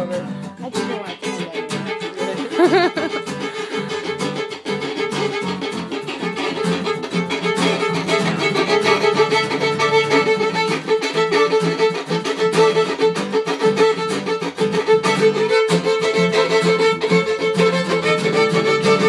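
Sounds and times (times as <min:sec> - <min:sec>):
fiddle played fast: 0:00.0 - 0:19.0.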